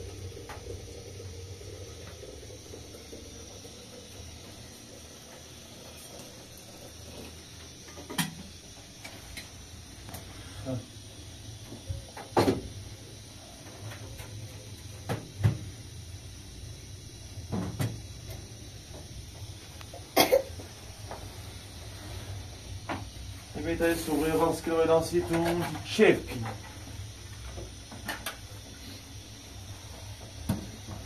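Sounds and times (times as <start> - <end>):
kettle clunking on metal stove: 12.2 - 12.7.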